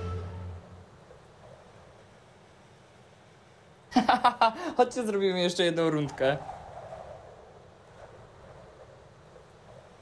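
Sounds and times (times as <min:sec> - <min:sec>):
low rumble and hiss of room: 0:00.0 - 0:06.5.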